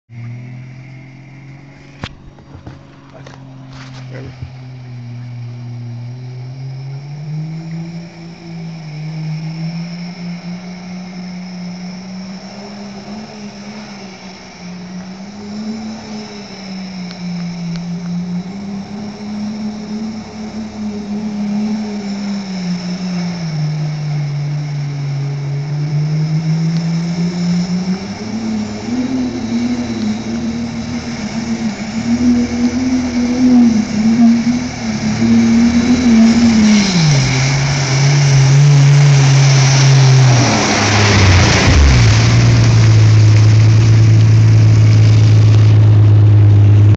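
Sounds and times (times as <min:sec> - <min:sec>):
truck engine under varying throttle: 0:00.0 - 0:46.9
rushing splashing water: 0:26.3 - 0:46.9.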